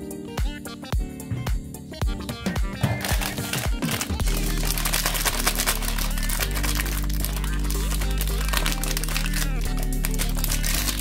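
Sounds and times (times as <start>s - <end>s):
background music: 0.0s - 11.0s
foil pouch crinkling: 2.8s - 11.0s.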